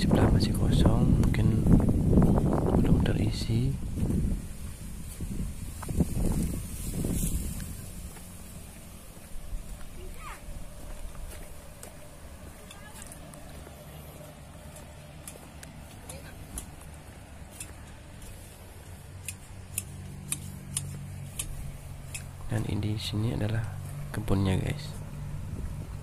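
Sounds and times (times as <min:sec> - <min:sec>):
low steady hum: 0:00.0 - 0:26.0
faint distant voices: 0:07.8 - 0:19.6.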